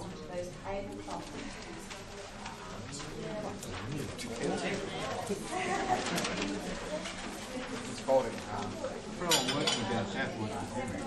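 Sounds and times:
hubbub of many people talking: 0.0s - 11.0s.

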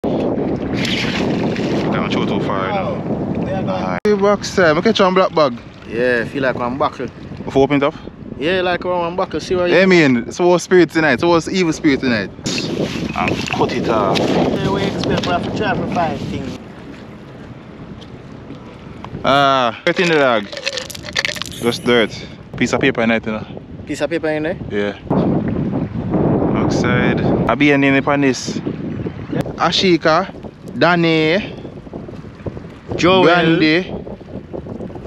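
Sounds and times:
wind rushing over microphone: 0.0s - 35.0s
indistinct voices: 19.9s - 22.4s.

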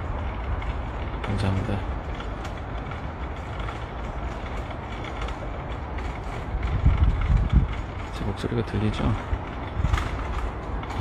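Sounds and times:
low rumble and hiss: 0.0s - 11.0s
faint scattered clicks: 0.1s - 11.0s.

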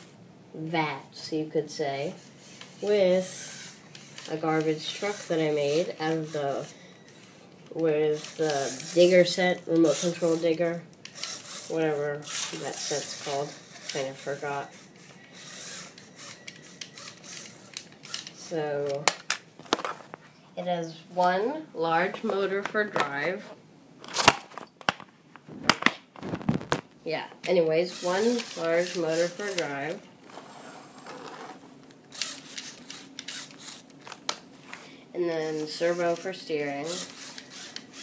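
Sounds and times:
handling noise on camera: 19.1s - 20.4s, 24.0s - 27.0s
rubbing plastic model: 28.0s - 33.8s.

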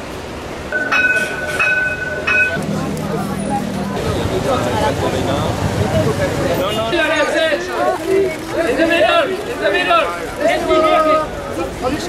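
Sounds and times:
bus passing: 0.0s - 12.0s.

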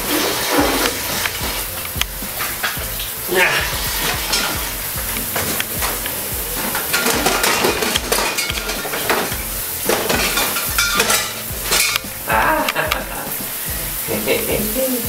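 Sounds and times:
toiletries clattering and clinking: 0.0s - 14.7s
background hiss: 0.0s - 15.0s.

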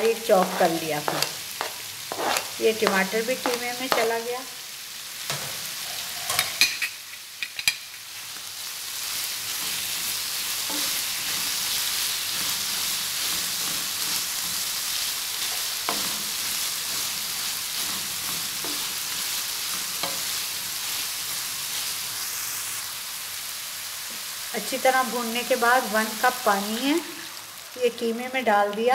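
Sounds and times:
meat sizzling in a frying pan: 0.0s - 28.9s.

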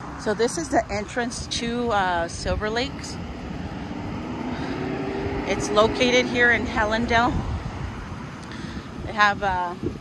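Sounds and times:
engine drone rising in pitch: 0.0s - 8.5s
low rumble: 0.1s - 10.0s.

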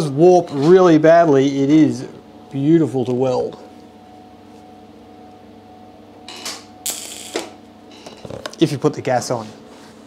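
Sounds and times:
welder humming: 6.3s - 8.2s
welding arc crackling and hissing: 6.8s - 7.6s.

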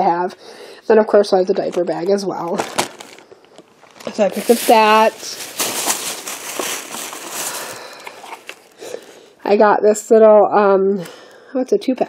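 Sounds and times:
plastic bag rustling: 1.9s - 9.4s.

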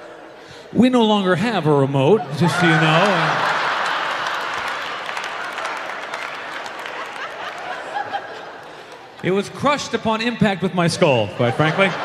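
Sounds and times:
audience laughing: 2.3s - 9.2s, 10.9s - 12.0s
audience applauding: 2.4s - 9.3s.

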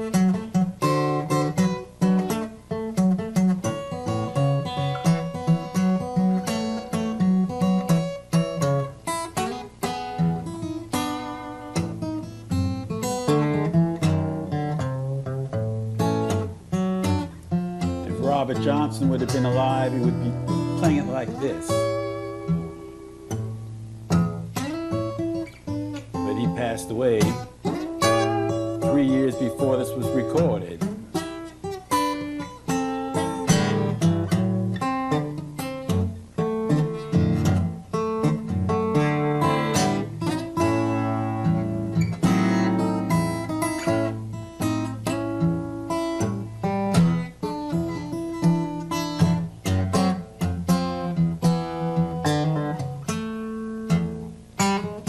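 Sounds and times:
fingerpicked acoustic guitar blues: 0.0s - 55.0s.

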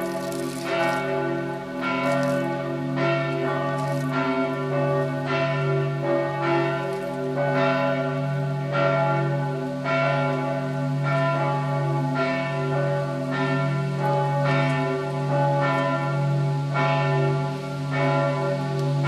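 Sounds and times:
church bells swinging and ringing: 0.0s - 19.0s.

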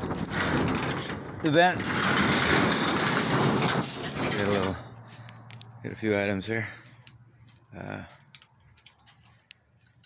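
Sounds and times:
light handling clicks and ticks: 4.6s - 10.0s.

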